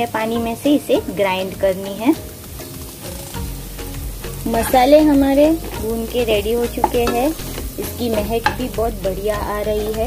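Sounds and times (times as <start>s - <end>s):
food sizzling in a pan: 0.0s - 10.0s
wooden spatula scraping a pan: 4.4s - 8.9s.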